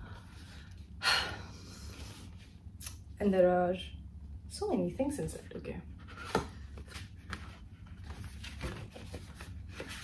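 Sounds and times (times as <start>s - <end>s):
paper rustling: 6.1s - 10.0s.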